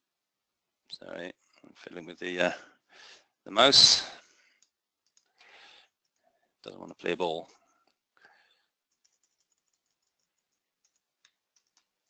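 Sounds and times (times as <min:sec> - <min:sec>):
computer mouse clicking: 0:04.6 - 0:05.4, 0:08.9 - 0:12.0
soft breath out: 0:05.4 - 0:05.9, 0:08.2 - 0:08.7.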